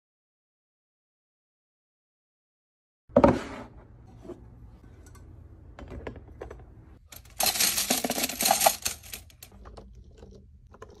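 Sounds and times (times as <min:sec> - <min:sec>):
small plastic pieces rattling: 0:07.1 - 0:10.3.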